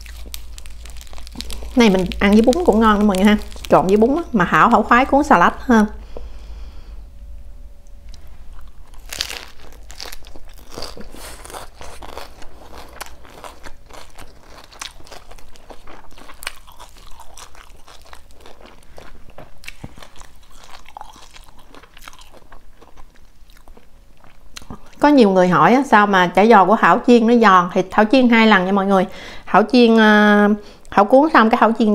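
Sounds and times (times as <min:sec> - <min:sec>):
crunching and chewing: 0:00.0 - 0:04.3, 0:08.1 - 0:25.0.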